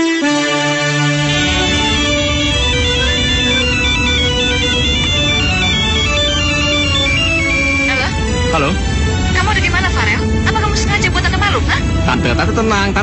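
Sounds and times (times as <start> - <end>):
background music: 0.0 - 13.0
phone ringtone melody: 1.2 - 8.3.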